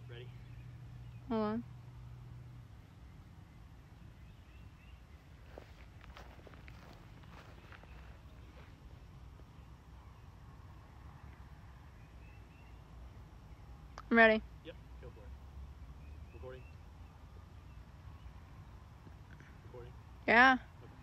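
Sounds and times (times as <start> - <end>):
soft footsteps: 5.4 - 9.5
faint bird chirps: 15.0 - 18.7.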